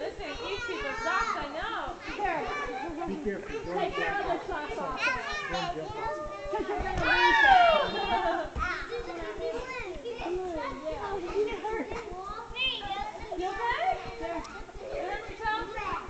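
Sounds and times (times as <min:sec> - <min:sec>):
children calling and chattering: 0:00.0 - 0:16.0
child shouting: 0:05.0 - 0:06.4, 0:07.0 - 0:09.8.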